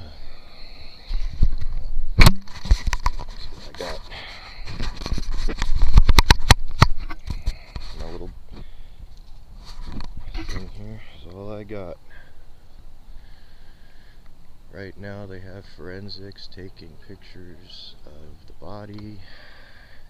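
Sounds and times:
rubbing and rumble on microphone: 1.0 - 11.2
camera handling clicks and knocks: 5.0 - 7.4.

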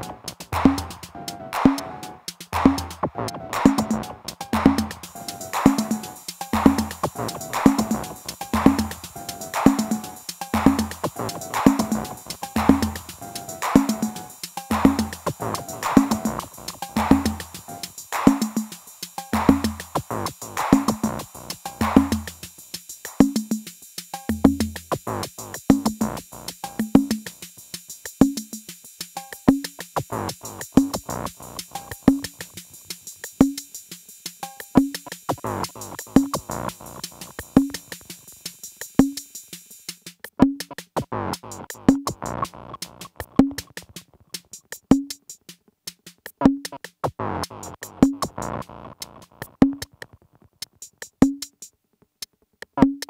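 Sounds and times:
hi-hat ticks: 0.0 - 53.0
high synth hiss: 4.1 - 40.1.

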